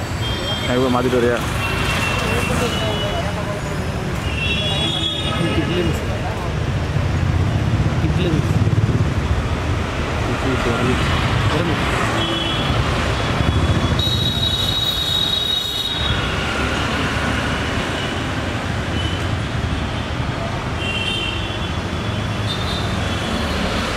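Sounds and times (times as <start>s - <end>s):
vehicle engines passing: 0.0s - 14.4s, 16.1s - 20.8s, 21.7s - 23.9s.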